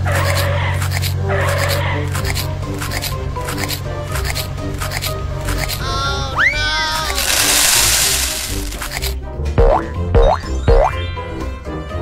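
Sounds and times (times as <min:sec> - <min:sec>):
cartoon background music: 0:00.0 - 0:12.0
cartoon boing effects with thumps: 0:09.6 - 0:10.9.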